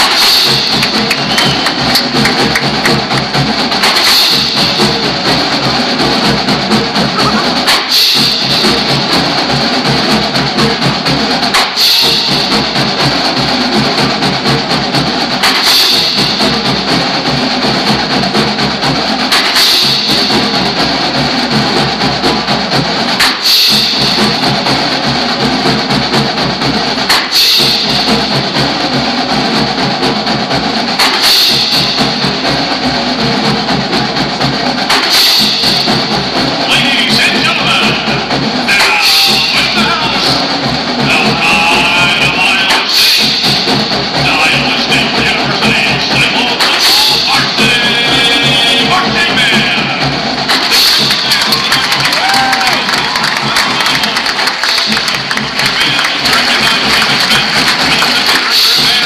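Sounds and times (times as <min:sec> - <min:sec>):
marching band playing: 0:00.0 - 0:59.0
strong accented hit: 0:00.0 - 0:59.0.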